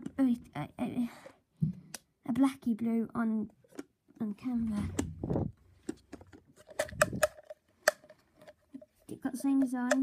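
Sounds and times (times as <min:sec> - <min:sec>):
plastic clicks and knocks: 0:03.6 - 0:10.0.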